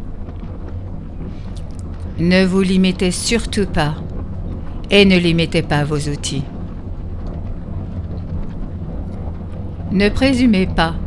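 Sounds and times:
steady low drone: 0.0s - 11.0s.

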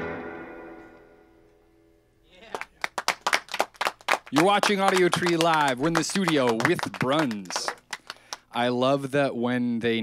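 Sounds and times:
electric guitar notes: 0.0s - 1.9s
small group clapping: 2.4s - 8.6s.

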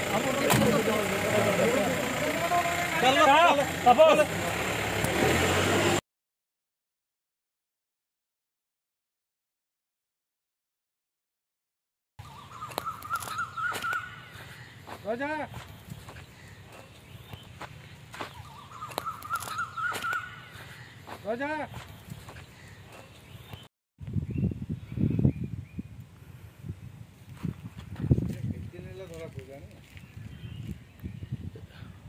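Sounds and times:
warbling bird call: 12.2s - 14.9s, 18.3s - 21.1s.

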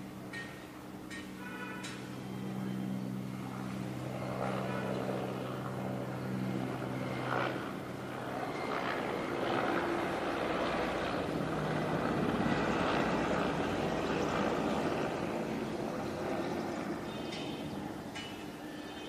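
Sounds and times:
helicopter flying overhead: 0.0s - 19.0s.

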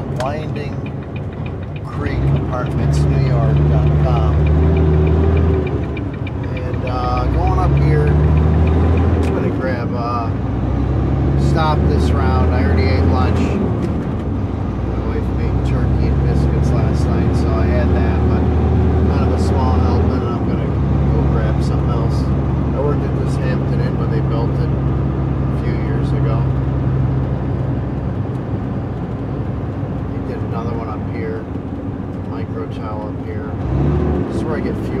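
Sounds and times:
truck diesel engine running: 0.0s - 35.0s
person speaking: 1.8s - 4.7s, 6.4s - 8.3s.

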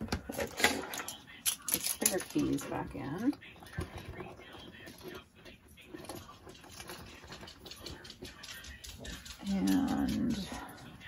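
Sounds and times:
small clicks of keys: 6.7s - 11.0s.

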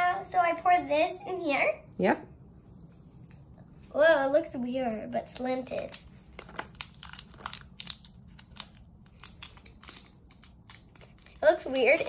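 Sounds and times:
plastic and foil packaging crinkling: 4.2s - 12.0s.

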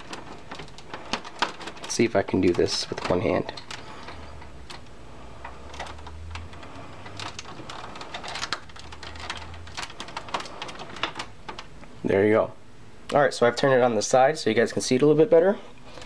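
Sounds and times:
plastic clicks and rattles: 0.0s - 11.9s.

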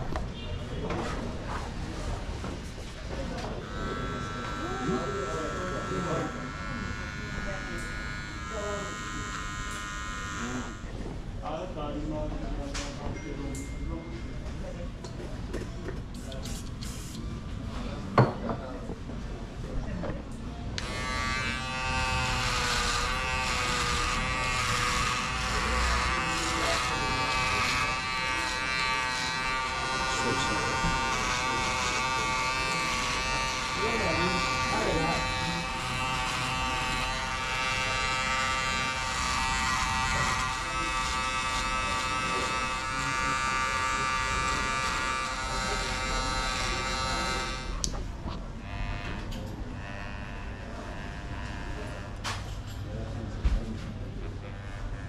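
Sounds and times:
electric hair clipper buzzing: 3.4s - 11.3s, 20.7s - 52.7s, 54.4s - 55.0s.

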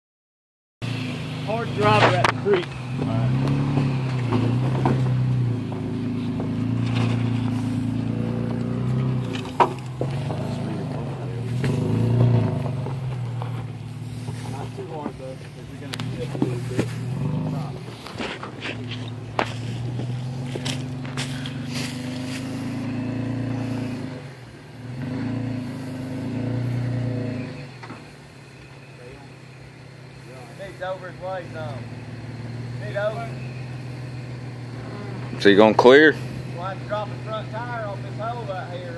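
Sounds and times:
engine pulling uphill: 0.8s - 38.9s
tyres knocking and scraping on rock: 1.9s - 7.4s, 18.0s - 21.5s.

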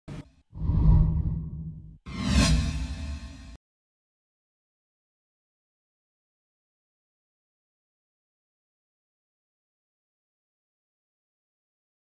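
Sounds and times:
whooshes: 0.1s - 3.6s.

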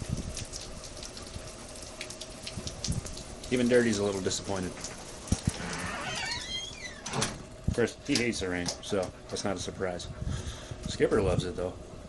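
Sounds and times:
door hinge squeaking: 5.6s - 7.5s
door thumping shut: 5.6s - 7.5s.

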